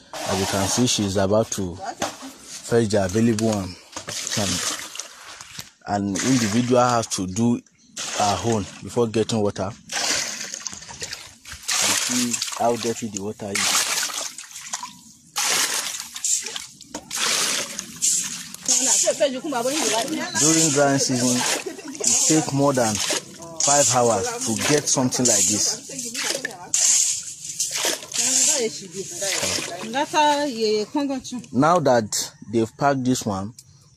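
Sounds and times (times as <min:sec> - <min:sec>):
muddy water splashing into basin: 0:02.9 - 0:07.2, 0:08.0 - 0:09.0, 0:09.9 - 0:30.4
voices talking: 0:18.7 - 0:26.9, 0:28.2 - 0:33.5.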